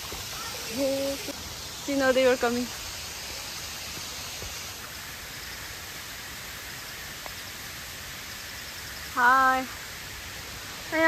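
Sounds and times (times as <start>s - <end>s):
rushing flowing water: 0.0s - 11.0s.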